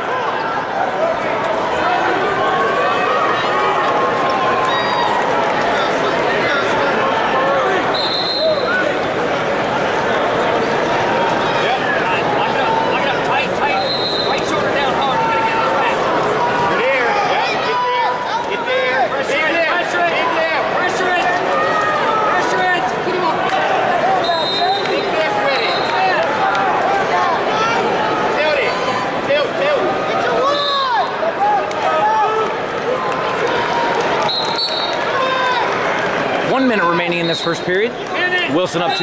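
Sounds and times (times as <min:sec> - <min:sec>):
crowd shouting: 0:00.0 - 0:39.0.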